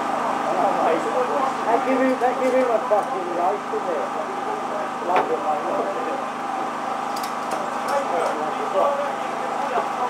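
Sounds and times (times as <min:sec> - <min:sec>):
engine drone: 0:00.0 - 0:10.0
people laughing and chatting: 0:00.0 - 0:10.0.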